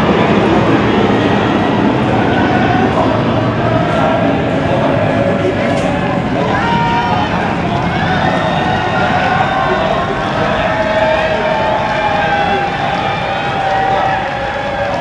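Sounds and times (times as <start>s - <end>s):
football supporters chanting: 0.0s - 15.0s.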